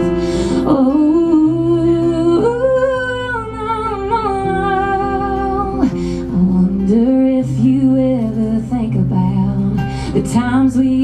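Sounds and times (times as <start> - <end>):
acoustic guitar chords: 0.0 - 11.0
woman singing with vibrato: 0.0 - 11.0.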